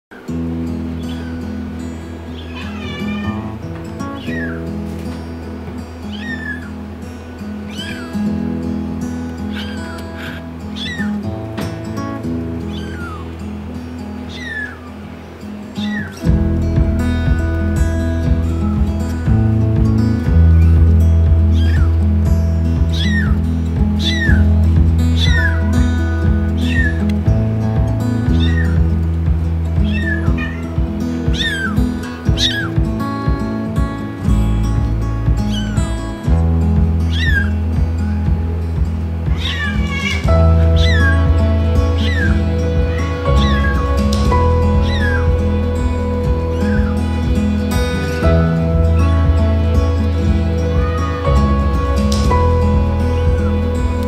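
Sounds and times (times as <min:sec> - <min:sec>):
kitten meowing: 0:02.4 - 0:04.6, 0:06.1 - 0:06.7, 0:07.7 - 0:08.2, 0:09.5 - 0:11.2, 0:12.7 - 0:13.3, 0:14.3 - 0:14.9, 0:15.8 - 0:16.2, 0:21.5 - 0:21.9, 0:22.9 - 0:23.4, 0:24.0 - 0:24.5, 0:25.1 - 0:25.7, 0:26.5 - 0:27.1, 0:28.3 - 0:28.9, 0:29.8 - 0:32.7, 0:35.5 - 0:35.8, 0:37.1 - 0:37.6, 0:39.3 - 0:45.4, 0:46.4 - 0:47.0
background music with a beat: 0:16.2 - 0:54.0.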